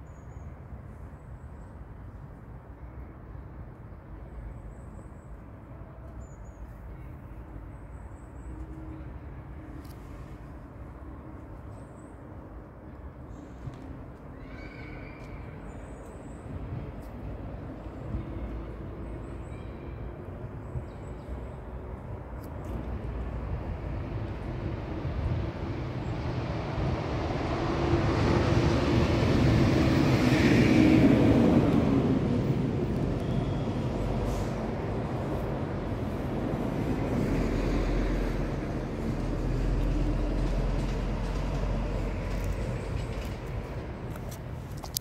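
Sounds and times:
outdoor rumbling noise: 22.8s - 45.0s.

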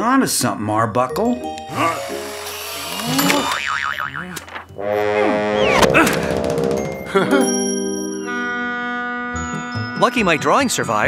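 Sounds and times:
cartoon soundtrack music: 1.1s - 3.5s, 4.1s - 10.6s
sliding pitches: 1.4s - 10.3s
fast warbling tone: 3.0s - 6.0s.

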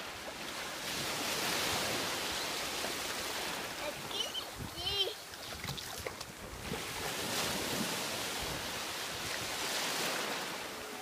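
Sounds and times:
sea surf washing in: 0.0s - 11.0s.

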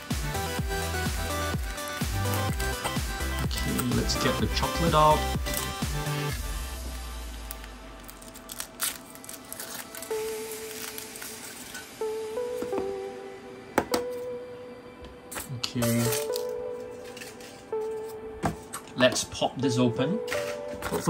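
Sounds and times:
background music with held notes: 0.0s - 21.0s
foil crinkling: 1.5s - 12.0s, 15.8s - 18.0s.

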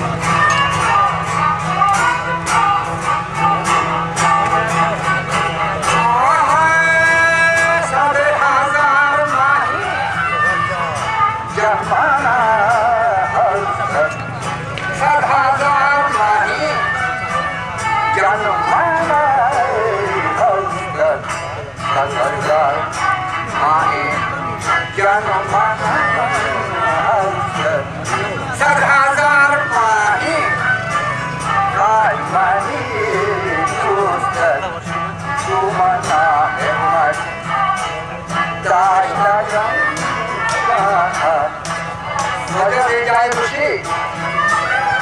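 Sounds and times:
man singing: 0.0s - 45.0s
string instrument: 0.0s - 45.0s.

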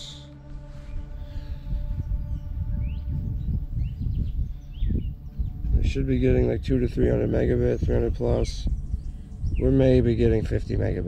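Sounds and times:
rising bird chirps: 0.0s - 5.9s, 7.5s - 10.2s
wind rumble on microphone: 0.0s - 11.0s.

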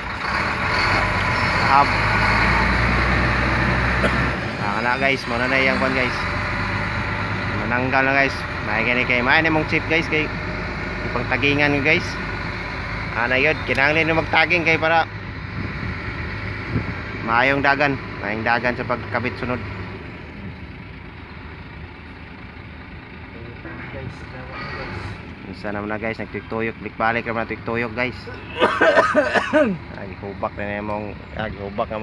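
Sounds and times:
diesel engine droning: 0.0s - 32.0s.

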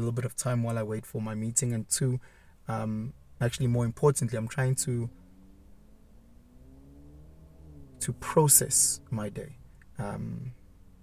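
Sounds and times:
faint vehicle engine hum: 0.0s - 11.0s
low steady rumble: 0.0s - 11.0s.

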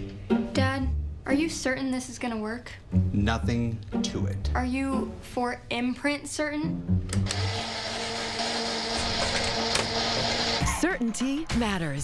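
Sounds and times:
appliance motor whirring: 7.1s - 10.8s.

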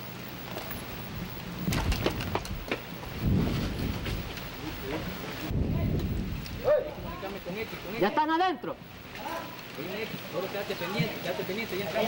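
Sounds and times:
low rumbling reports: 0.0s - 11.8s.

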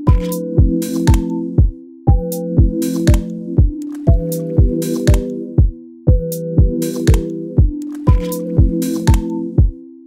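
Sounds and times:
hip-hop beat: 0.0s - 9.8s
kick drum: 0.1s - 9.8s.

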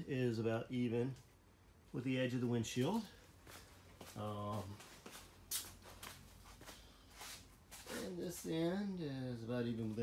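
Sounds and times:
low steady hum: 0.0s - 10.0s
footsteps on concrete: 3.4s - 8.0s.

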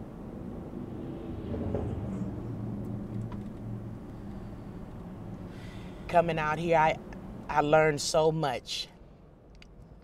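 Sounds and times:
car driving rumble: 0.0s - 7.7s
faint street sounds: 0.0s - 10.0s.

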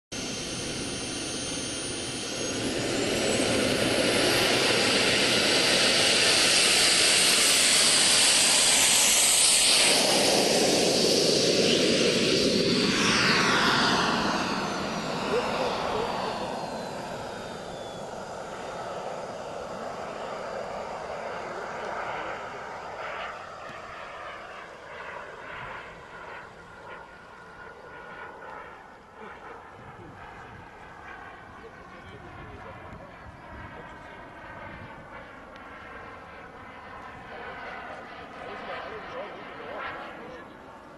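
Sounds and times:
model jet turbine whine: 0.1s - 40.9s.

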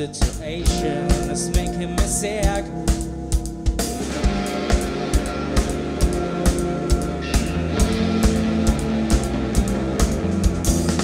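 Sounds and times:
drum kit beat: 0.0s - 11.0s
electric bass: 0.0s - 11.0s
electric guitars: 0.0s - 11.0s.

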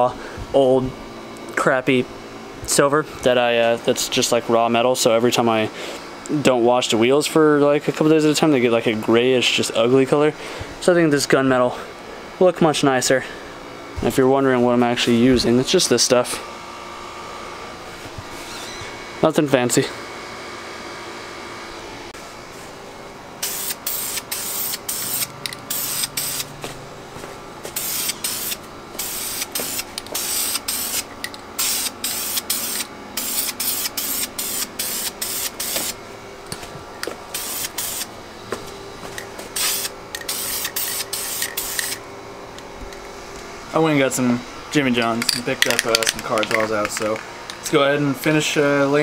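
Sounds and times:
aerosol spray bursts: 23.4s - 26.5s, 27.7s - 36.0s, 37.3s - 38.1s, 39.6s - 42.0s.

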